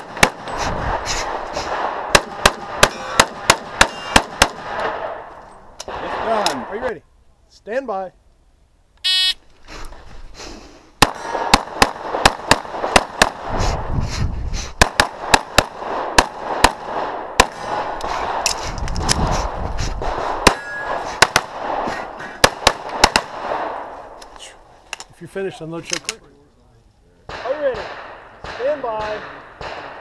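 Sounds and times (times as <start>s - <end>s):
pistol shots: 1.3s - 5.2s, 11.0s - 13.5s, 14.8s - 18.5s, 20.0s - 23.9s, 27.3s - 30.0s
shot timer beep: 9.0s - 9.4s.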